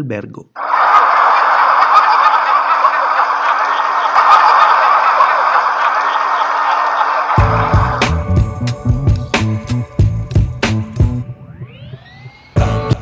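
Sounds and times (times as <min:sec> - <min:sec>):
crowd laughing: 0:00.6 - 0:08.2.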